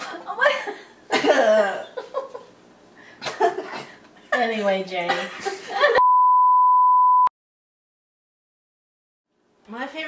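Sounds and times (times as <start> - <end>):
laughter: 0.3 - 2.6, 3.2 - 3.9, 5.1 - 6.0.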